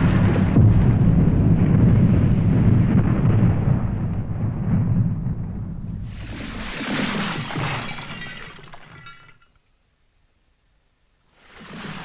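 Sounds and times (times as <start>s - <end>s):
deep rumble: 0.0s - 6.8s
shattering crash: 4.7s - 9.6s
tinkling debris: 6.1s - 9.6s.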